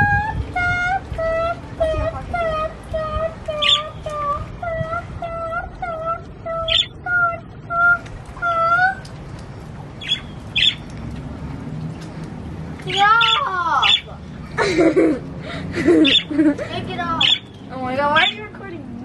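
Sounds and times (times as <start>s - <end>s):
budgerigars calling: 3.6s - 3.9s, 6.7s - 7.0s, 10.0s - 10.8s, 12.9s - 14.1s, 16.0s - 16.3s, 17.1s - 18.5s
high chirps: 3.6s - 4.0s, 10.0s - 10.9s, 16.0s - 16.3s, 17.2s - 18.4s.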